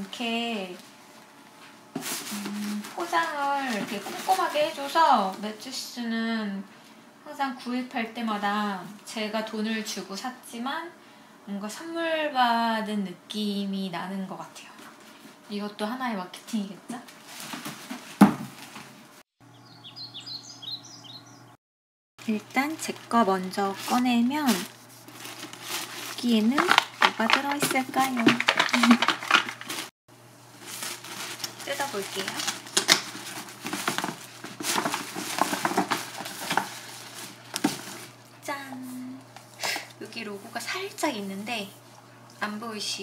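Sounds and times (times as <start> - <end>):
wrapping paper rustling and tearing: 2.0 - 5.4, 17.1 - 19.0, 22.2 - 29.9, 30.5 - 38.2
person humming: 2.3 - 3.0
small birds chirping: 19.4 - 21.6
packaging thump: 23.8 - 29.9, 30.7 - 38.1.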